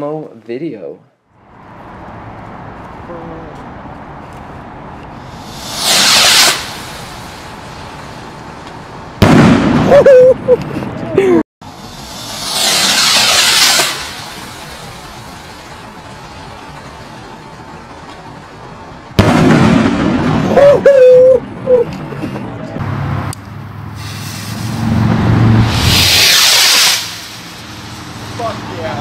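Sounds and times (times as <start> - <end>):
rocket launch hisses: 5.3 - 8.0, 11.7 - 15.7, 24.0 - 28.6
loud firework reports: 5.3 - 8.4, 9.2 - 10.3, 11.7 - 17.4, 19.2 - 21.2, 25.5 - 29.0.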